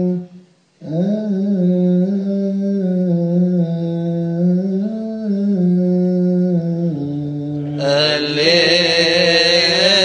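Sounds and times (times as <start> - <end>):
man chanting liturgical hymn: 0.0 - 10.0.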